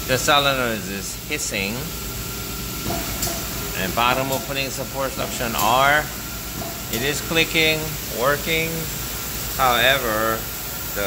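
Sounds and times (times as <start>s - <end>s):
compressed air hissing: 0.0s - 11.0s
machine low hum: 0.0s - 11.0s.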